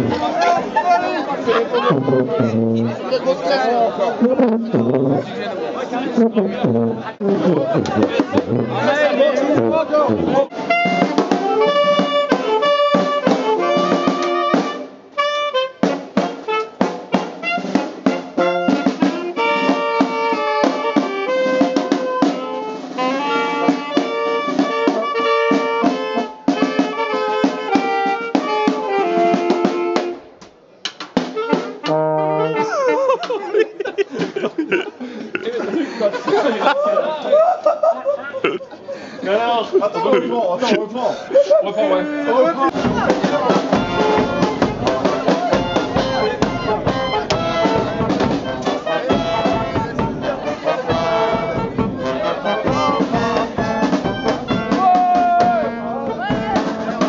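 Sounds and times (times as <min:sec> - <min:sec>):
street brass band playing: 0:00.0 - 0:33.8, 0:41.8 - 0:57.0
people chattering: 0:00.0 - 0:57.0
snare drum strokes: 0:10.1 - 0:14.9, 0:42.7 - 0:57.0.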